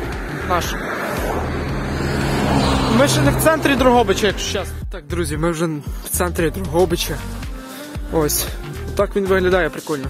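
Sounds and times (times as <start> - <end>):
motor vehicle passing: 0.0 - 4.8.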